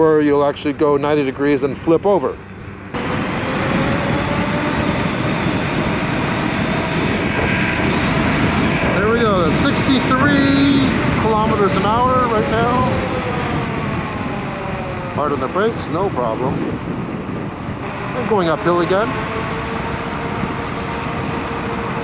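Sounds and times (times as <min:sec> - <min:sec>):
road noise: 0:00.0 - 0:22.0
wind rushing over microphone: 0:02.6 - 0:22.0
electric motor whine: 0:03.0 - 0:16.7, 0:17.6 - 0:22.0.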